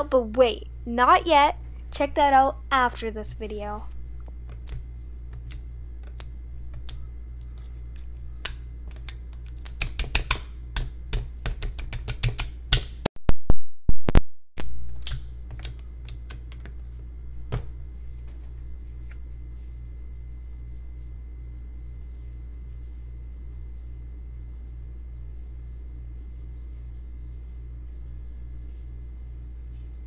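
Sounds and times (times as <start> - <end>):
steady low hum: 0.0 - 13.1, 14.6 - 30.0
fingers poking sticky slime: 5.4 - 7.0, 8.4 - 13.0.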